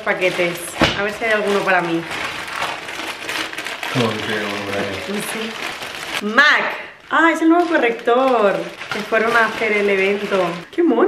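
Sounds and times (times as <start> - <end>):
plastic packaging rustling and tearing: 0.0 - 11.0.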